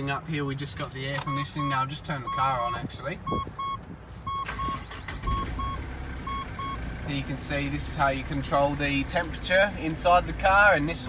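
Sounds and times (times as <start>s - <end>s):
low engine rumble: 0.0s - 11.0s
dashboard warning chime beeping: 1.2s - 2.6s, 3.2s - 6.8s.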